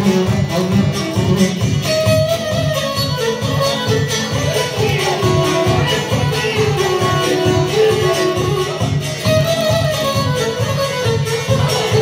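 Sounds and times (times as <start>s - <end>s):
plucked string melody: 0.0s - 12.0s
strummed beat: 0.0s - 12.0s.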